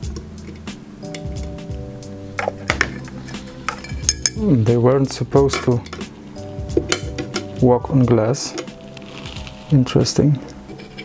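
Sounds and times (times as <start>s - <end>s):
background music with held chords: 0.0s - 11.0s
glass terrarium handled: 2.4s - 4.5s.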